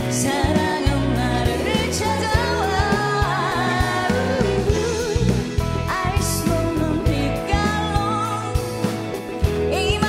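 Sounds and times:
female backing vocals: 0:00.0 - 0:08.6
bass: 0:00.0 - 0:10.0
drums: 0:00.0 - 0:10.0
woman singing pop ballad: 0:00.0 - 0:10.0.

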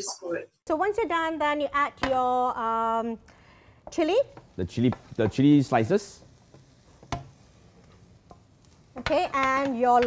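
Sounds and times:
utensil tapping a wok: 0:03.8 - 0:05.6, 0:06.5 - 0:07.4, 0:08.2 - 0:10.0
food scraped and stirred in a wok: 0:04.3 - 0:10.0.

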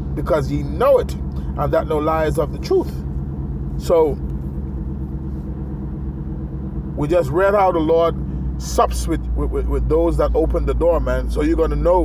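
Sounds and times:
low mechanical rumble and hum: 0:00.0 - 0:12.0.

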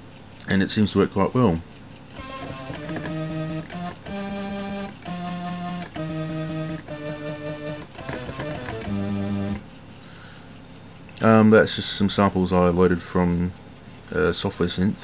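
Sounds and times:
held synth notes stepping in pitch: 0:02.2 - 0:09.6.

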